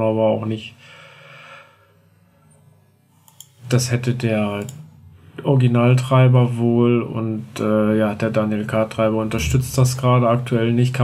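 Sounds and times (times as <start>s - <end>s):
soft breath: 0.8s - 2.3s
low steady hum: 9.0s - 10.4s.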